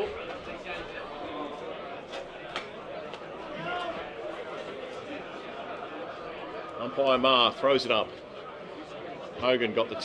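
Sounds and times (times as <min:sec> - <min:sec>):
low background chatter: 0:00.0 - 0:10.0.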